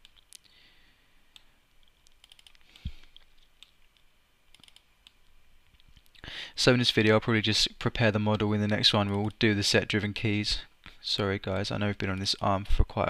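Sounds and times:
computer mouse clicks: 1.3s - 3.8s, 4.5s - 5.2s.

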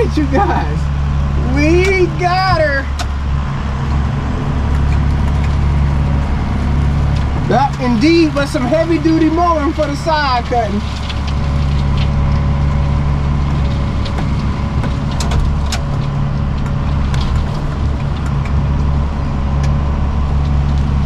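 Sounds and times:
tractor diesel engine droning: 0.0s - 21.0s.

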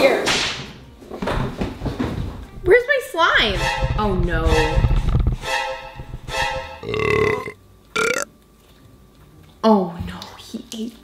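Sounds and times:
loud rough burp: 6.8s - 8.3s.

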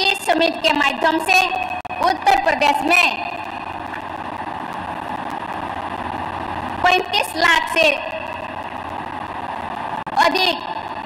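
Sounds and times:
woman speaking: 0.0s - 3.4s, 6.8s - 8.2s, 10.2s - 10.7s
hall hiss with faint hum: 0.0s - 11.0s.

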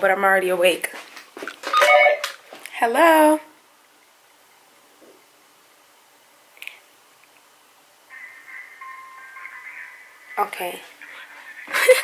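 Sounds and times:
woman speaking into telephone: 2.7s - 3.5s, 10.4s - 11.0s.

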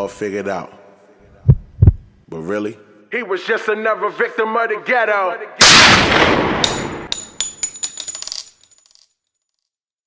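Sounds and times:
small metal pieces clattering: 6.6s - 9.7s.

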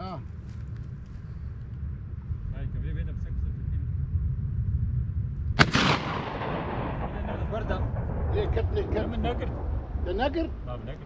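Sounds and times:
gunshot echoing: 5.6s - 10.0s.

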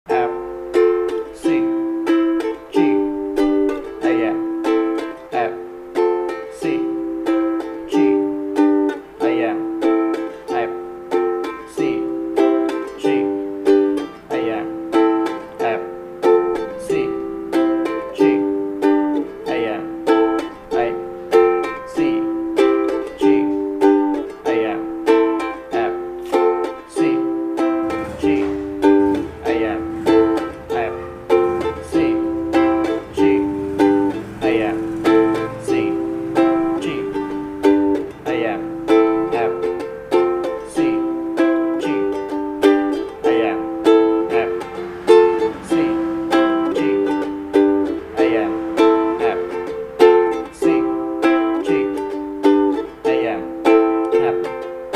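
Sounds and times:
ukulele strumming: 0.1s - 54.9s.

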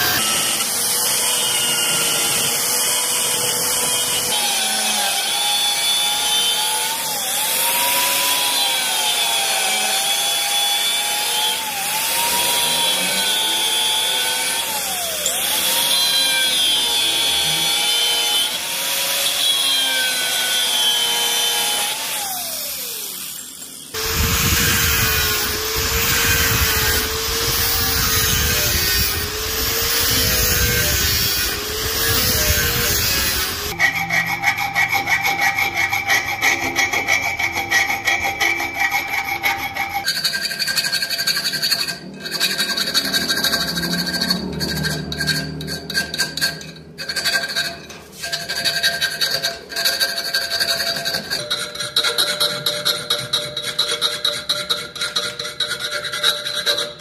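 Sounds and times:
angle grinder cutting steel: 0.0s - 57.0s
file rasping steel: 0.0s - 57.0s
grinder grinding steel: 0.0s - 57.0s.

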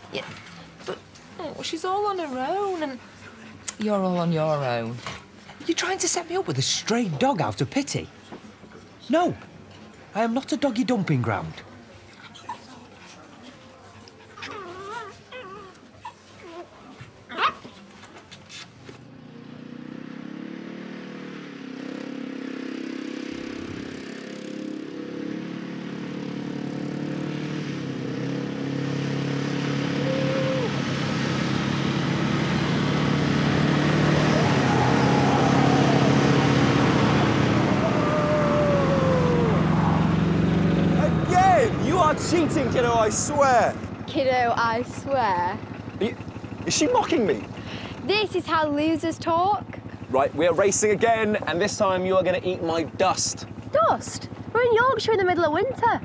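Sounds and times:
quad bike engines revving: 14.4s - 56.0s.

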